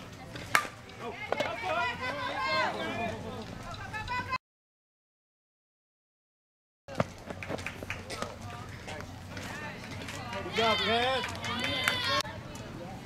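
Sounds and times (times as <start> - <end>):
excited voices shouting: 1.1 - 3.0, 10.4 - 12.2.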